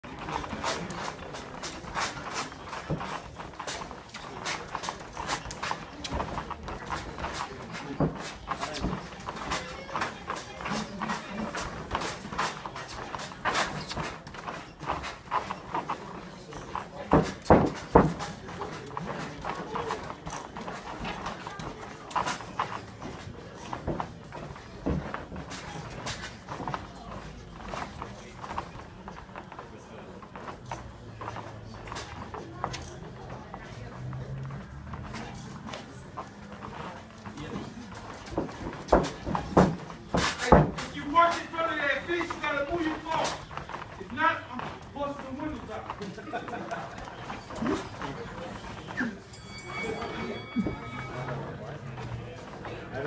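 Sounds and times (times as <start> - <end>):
sneaker taps and shuffles: 0.1 - 49.0.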